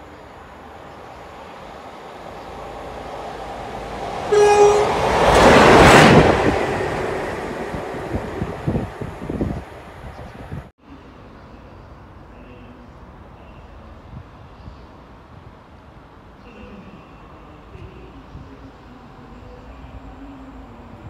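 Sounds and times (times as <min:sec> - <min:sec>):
train passing at speed: 0:00.0 - 0:21.0
train horn blast: 0:04.2 - 0:06.0.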